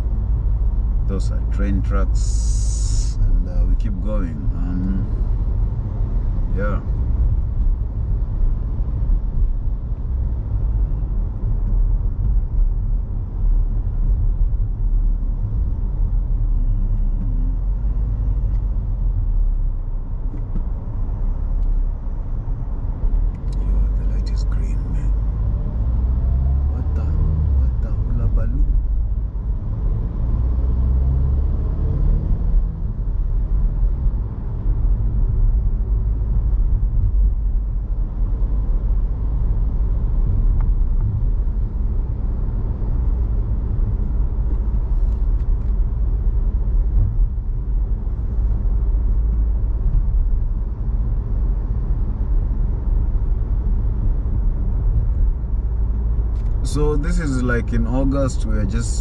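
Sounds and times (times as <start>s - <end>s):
car engine and tyre rumble: 0.0s - 59.0s.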